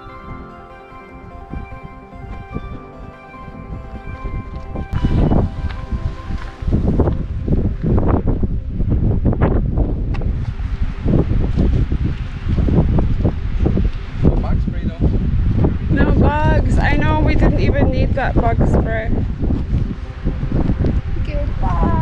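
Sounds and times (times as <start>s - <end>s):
background music: 0.0s - 10.4s, 15.7s - 22.0s
wind buffeting microphone: 0.0s - 22.0s.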